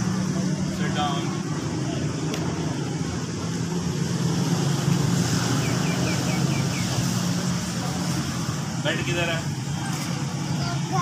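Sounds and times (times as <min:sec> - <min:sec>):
vehicle engine hum: 0:00.0 - 0:11.0
high falling chirps: 0:05.4 - 0:07.3.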